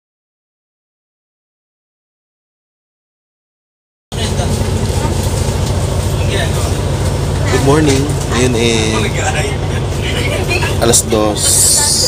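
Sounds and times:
bus cabin noise: 4.1 - 12.0
bus engine rumble: 4.1 - 12.0.

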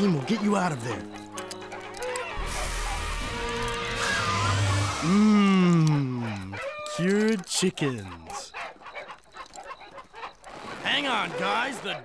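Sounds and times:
background music: 0.0 - 8.4.

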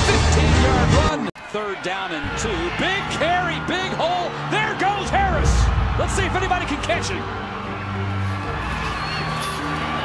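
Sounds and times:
bass: 0.0 - 1.3, 2.2 - 10.0.

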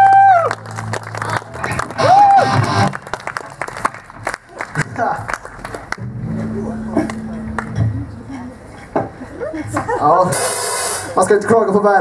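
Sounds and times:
bass guitar low note ringing: 6.0 - 8.5
burst of hiss: 10.3 - 11.2.

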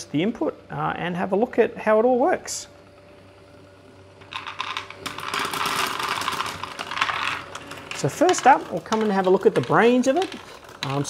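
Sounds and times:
plastic balls clattering: 4.2 - 11.0.

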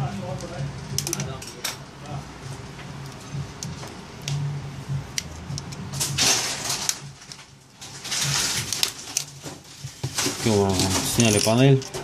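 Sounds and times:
scraping rustles: 6.0 - 12.0.

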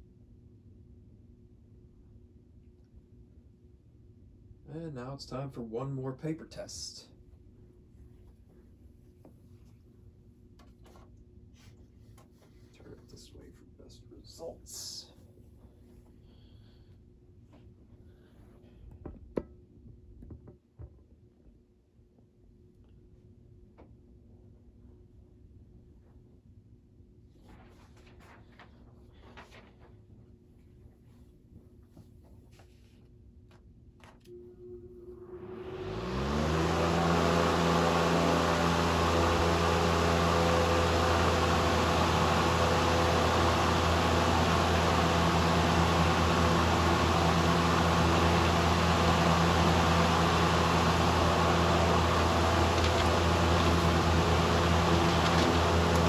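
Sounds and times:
electric fan motor hum: 34.3 - 56.0.

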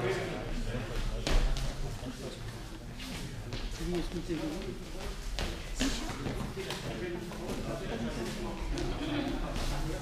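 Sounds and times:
indistinct talking echoing: 0.0 - 10.0.

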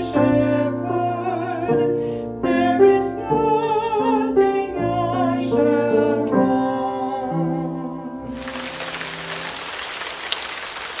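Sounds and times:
steady rain-like hiss: 8.3 - 11.0
small patters and crackles: 8.4 - 11.0.

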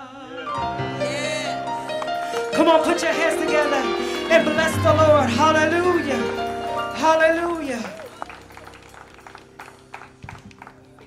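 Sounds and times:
scattered hand clapping: 1.9 - 11.0.

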